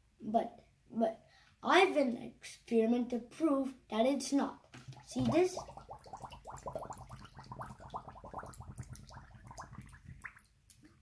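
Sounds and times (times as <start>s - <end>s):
air bubbling out of bottle underwater: 4.8s - 11.0s.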